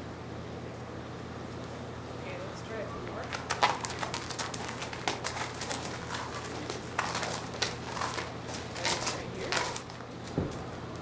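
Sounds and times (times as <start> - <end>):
hooves walking on gravel: 3.1 - 11.0.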